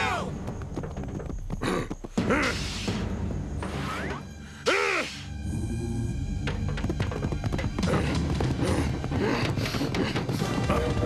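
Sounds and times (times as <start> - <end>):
cartoon galloping hoofbeats: 0.0 - 2.9, 6.3 - 11.0
background music: 0.0 - 11.0.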